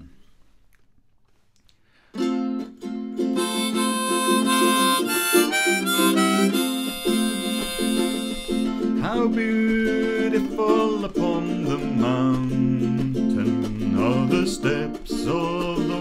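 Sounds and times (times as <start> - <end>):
harmonica melody: 2.2 - 12.2
strummed ukulele: 2.2 - 16.0.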